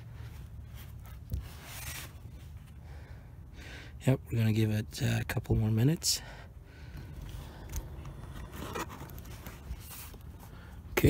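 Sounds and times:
handling scrapes and rustles: 0.0 - 2.8, 7.3 - 10.8
low steady hum: 0.0 - 11.0.

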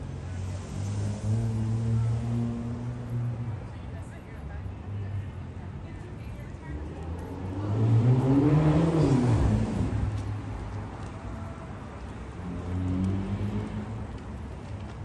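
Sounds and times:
car driving past: 0.2 - 3.5, 7.0 - 11.6.

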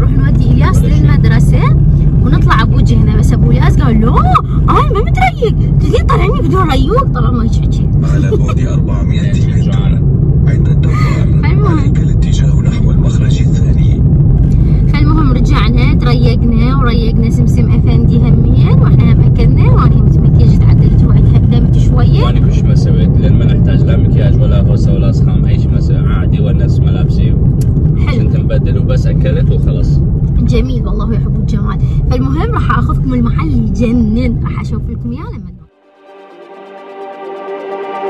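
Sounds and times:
people talking: 0.0 - 27.4, 28.0 - 35.7
car road rumble: 0.0 - 35.7.

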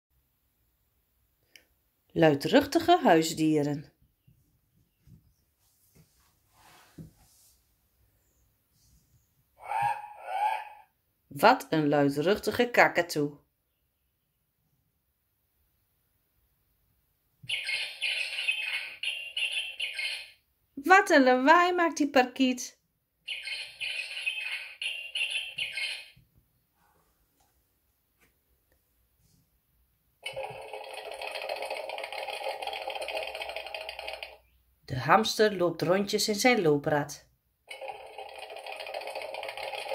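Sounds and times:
recorded cockatoo screech: 9.6 - 10.9, 17.5 - 20.4, 23.3 - 26.2
hamster wheel rattling from speaker: 30.2 - 34.4, 37.7 - 39.9.

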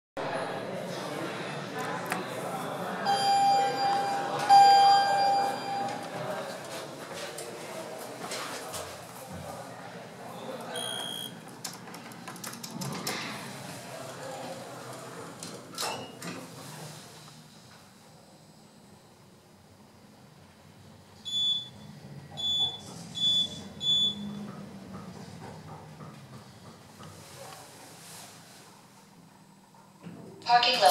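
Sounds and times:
elevator arrival chime: 3.0 - 6.2.

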